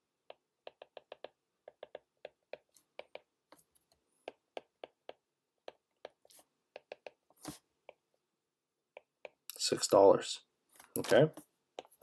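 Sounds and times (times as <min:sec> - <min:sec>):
stylus tapping on glass screen: 0:00.2 - 0:03.6, 0:04.2 - 0:07.2.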